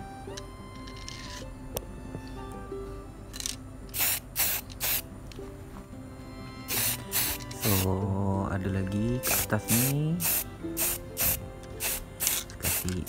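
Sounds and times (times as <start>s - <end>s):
background music: 0.0s - 13.0s
spray-paint can bursts: 3.9s - 5.0s, 6.7s - 8.0s, 9.2s - 13.0s.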